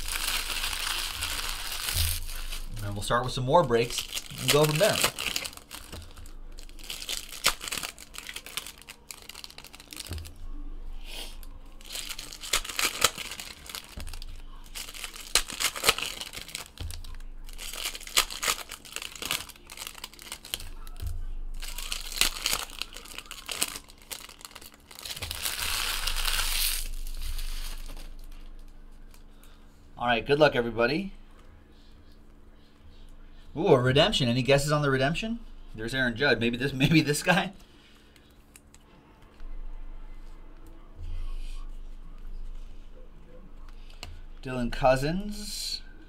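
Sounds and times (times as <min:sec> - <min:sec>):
card pack wrappers crinkling and tearing: 0:00.0 - 0:10.4, 0:11.2 - 0:29.3.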